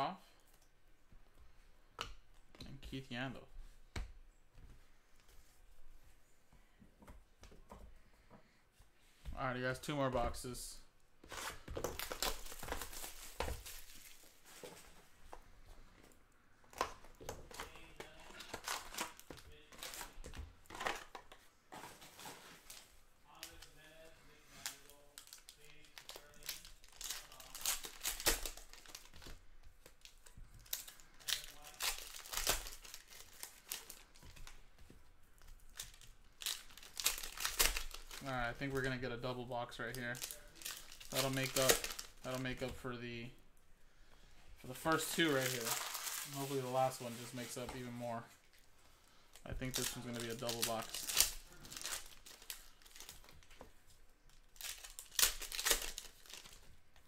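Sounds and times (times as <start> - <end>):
plastic and foil wrappers crinkling: 11.2 - 15.1, 16.7 - 43.4, 44.0 - 57.0.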